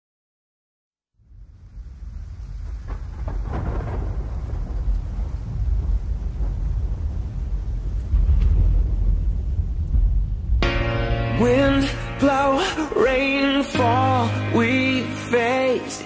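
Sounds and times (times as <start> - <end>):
rain: 1.1 - 16.0
thunder rumble: 1.2 - 16.0
sharp thunder cracks: 1.6 - 14.8.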